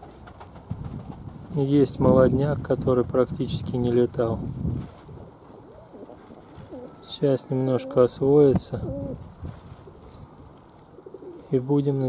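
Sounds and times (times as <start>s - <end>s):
pigeons cooing: 5.1s - 9.2s, 9.9s - 11.6s.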